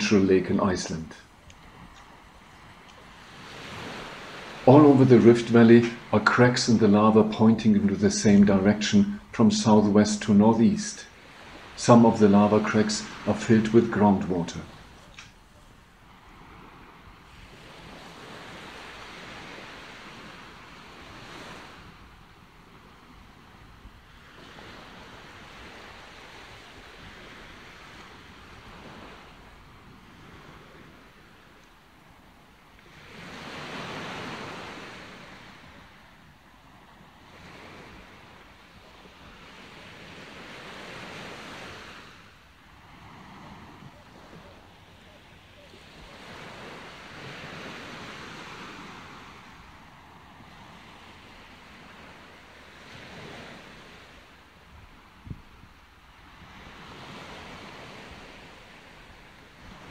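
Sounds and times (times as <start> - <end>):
wind gusting over microphone: 0.0 - 31.5, 45.8 - 59.9.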